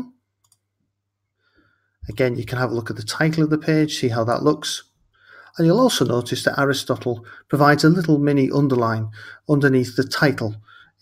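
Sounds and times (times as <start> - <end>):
computer mouse clicks: 0.4 - 0.7.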